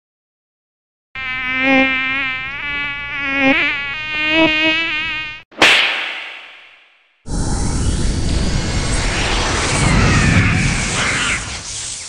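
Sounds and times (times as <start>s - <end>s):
mosquito buzzing: 1.2s - 5.5s
loud slap: 5.5s - 6.9s.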